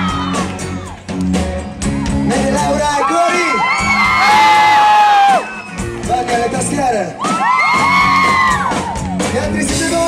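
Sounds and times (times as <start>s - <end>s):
crowd whooping and screaming: 0.0s - 1.1s, 1.9s - 9.6s
live pop band playing: 0.0s - 10.0s.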